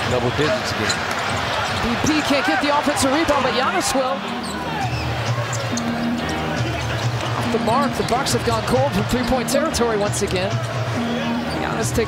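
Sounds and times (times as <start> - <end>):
basketball court noise: 0.0 - 12.0
arena music with low bass: 3.4 - 12.0.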